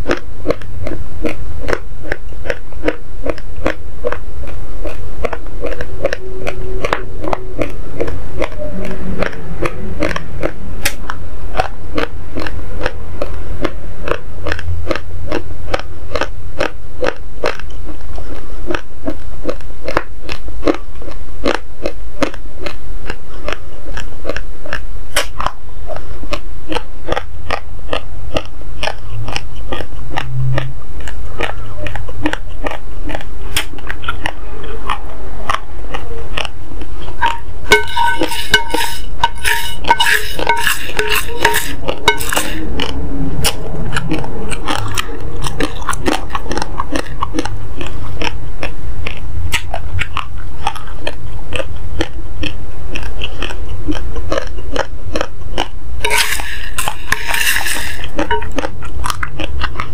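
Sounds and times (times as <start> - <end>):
dry rice grains being chewed: 0.0 - 59.9.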